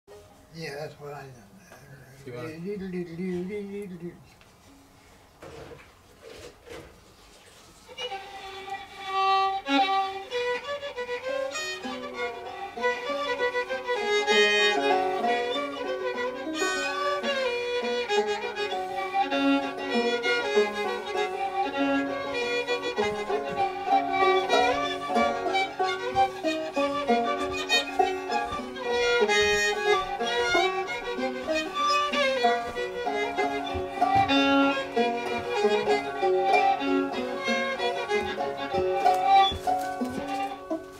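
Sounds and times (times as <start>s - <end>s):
banjo picking: 0.1s - 0.7s, 7.9s - 40.9s
fiddle playing lively tune: 7.7s - 40.9s.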